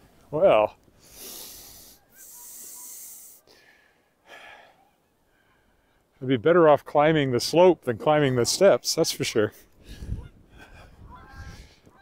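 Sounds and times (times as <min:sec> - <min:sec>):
man breathing out heavily: 0:01.0 - 0:05.8.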